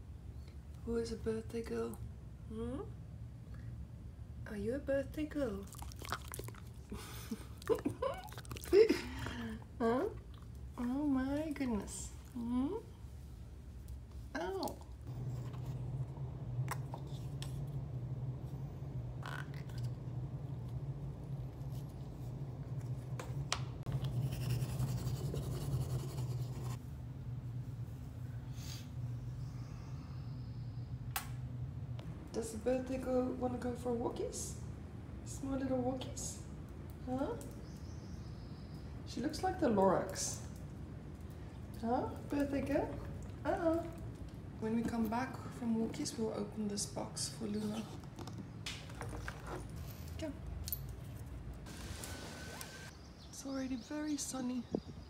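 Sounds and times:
steady low hum: 0:00.0 - 0:55.0
faint steady whine: 0:06.4 - 0:47.5
low rumble: 0:14.8 - 0:35.4
toothbrush scrubbing: 0:24.0 - 0:26.8.

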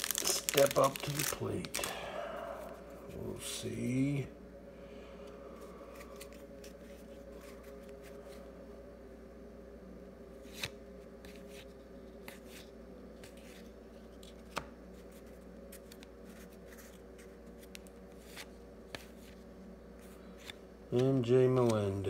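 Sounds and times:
cards rustling and clicking: 0:00.0 - 0:02.0, 0:05.9 - 0:08.5, 0:10.4 - 0:19.4, 0:20.0 - 0:22.0
faint steady hum: 0:00.0 - 0:22.0.

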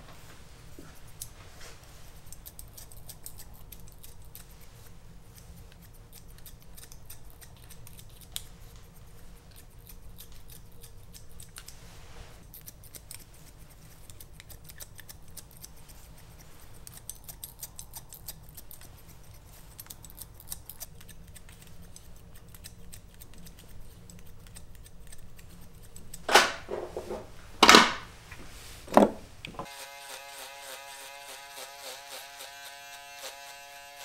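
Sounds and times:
soft rustle of hair: 0:00.0 - 0:10.7, 0:11.3 - 0:26.1, 0:28.2 - 0:28.9
scissors snipping hair: 0:01.0 - 0:01.4, 0:02.2 - 0:11.8, 0:12.4 - 0:26.3, 0:29.6 - 0:34.0.

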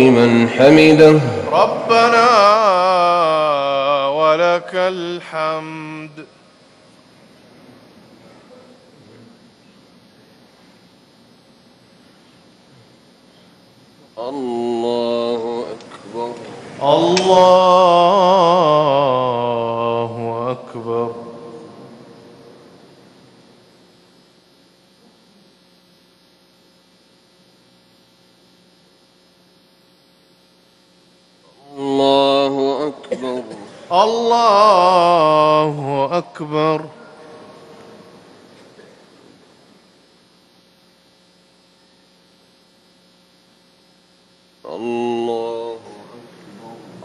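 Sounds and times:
man chanting over loudspeakers: 0:00.0 - 0:06.3, 0:14.2 - 0:22.6, 0:31.5 - 0:38.2, 0:44.6 - 0:47.0
faint electrical hum: 0:00.0 - 0:47.0.

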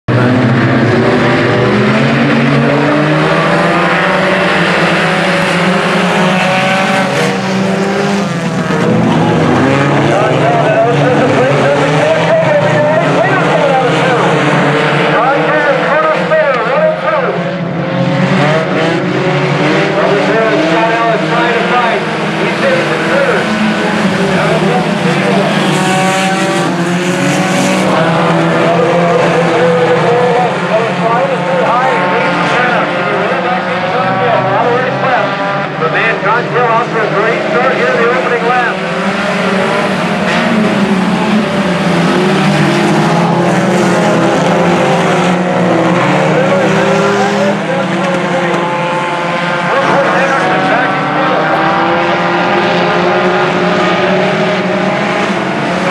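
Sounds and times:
race car engines revving: 0:00.0 - 0:55.9.

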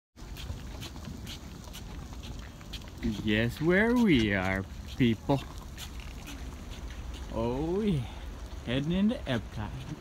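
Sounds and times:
footsteps on asphalt: 0:00.2 - 0:07.8.

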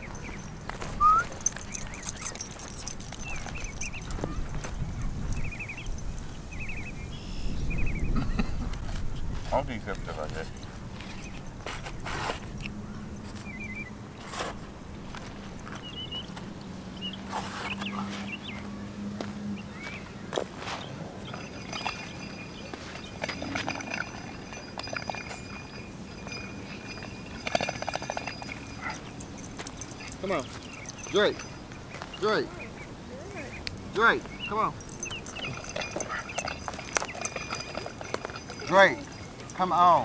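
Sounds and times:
dogs barking: 0:21.2 - 0:39.6.

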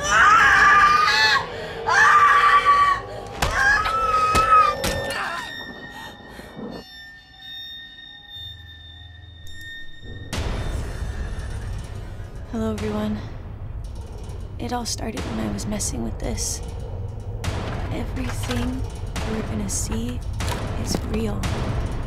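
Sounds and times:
woman screaming: 0:00.0 - 0:05.5.

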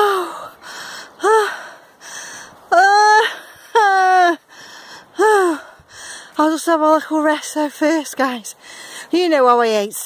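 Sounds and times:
woman breathing heavily: 0:00.0 - 0:06.4, 0:08.6 - 0:09.2.

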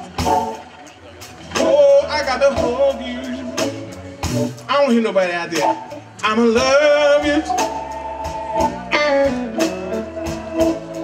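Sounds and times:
electric blues band playing: 0:00.0 - 0:11.0.

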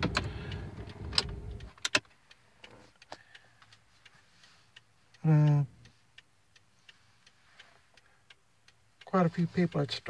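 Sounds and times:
car engine rumble: 0:00.0 - 0:04.0.

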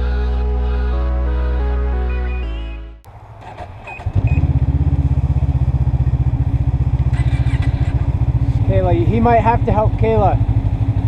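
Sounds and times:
background music: 0:00.0 - 0:03.1
short beeps: 0:02.1 - 0:02.9, 0:03.8 - 0:04.5
snowmobile engine running: 0:03.5 - 0:11.0.

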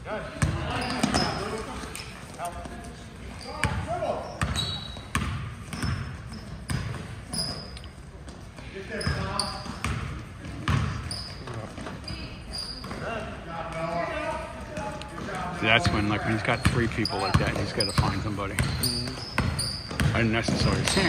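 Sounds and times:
basketball bouncing on gym floor: 0:00.4 - 0:01.5, 0:03.5 - 0:13.2, 0:14.7 - 0:21.0
sneaker squeaks: 0:00.4 - 0:21.0.

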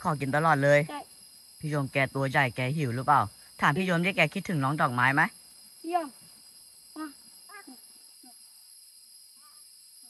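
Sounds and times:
insects chirring: 0:00.0 - 0:10.0
child's soft voice: 0:00.9 - 0:01.1, 0:05.8 - 0:06.2, 0:07.0 - 0:08.4.

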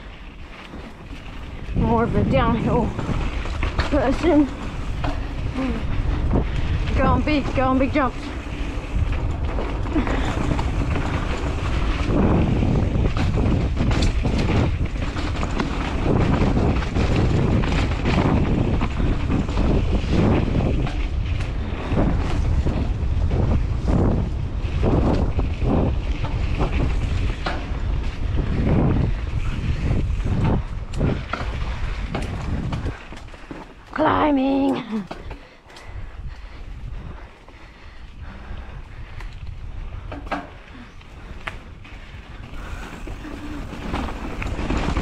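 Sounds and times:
bike rattling and knocking: 0:00.0 - 0:45.0
bike tyres rolling over dirt: 0:00.0 - 0:45.0
wind rushing over microphone: 0:00.0 - 0:45.0.

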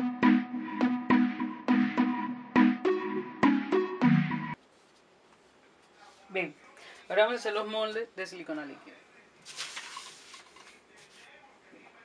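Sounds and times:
paper sheets rustling: 0:09.4 - 0:11.3.

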